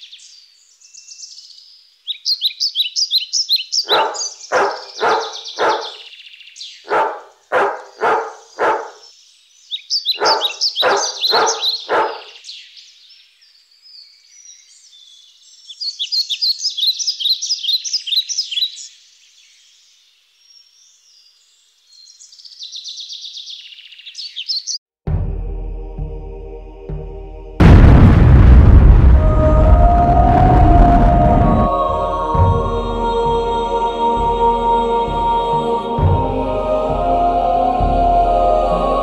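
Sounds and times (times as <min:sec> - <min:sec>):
birdsong chirps and whistles: 0:00.0 - 0:24.8
dog barking: 0:03.9 - 0:06.1, 0:06.9 - 0:09.1, 0:10.2 - 0:12.4
deep rumbling boom: 0:25.1 - 0:33.5
held musical note: 0:25.1 - 0:39.0.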